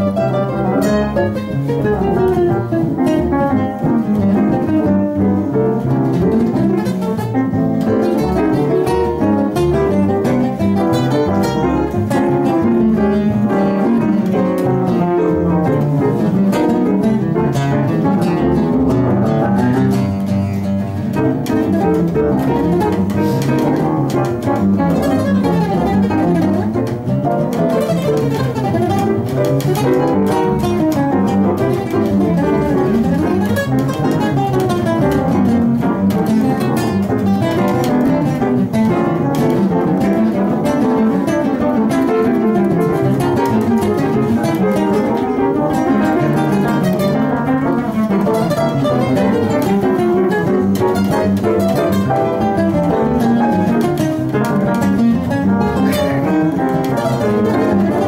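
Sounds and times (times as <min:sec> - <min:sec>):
grand piano: 0:00.0 - 0:58.0
jazz guitar: 0:00.0 - 0:58.0
pizzicato double bass: 0:00.0 - 0:58.0.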